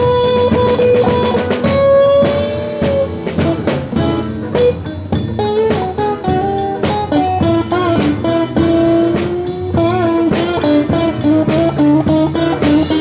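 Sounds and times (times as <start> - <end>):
bass guitar: 0.0 - 13.0
drums: 0.0 - 13.0
electric guitar bent notes: 0.0 - 13.0.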